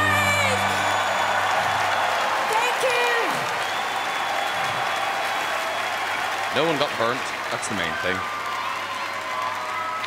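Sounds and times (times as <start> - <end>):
crowd applauding and cheering: 0.0 - 10.0.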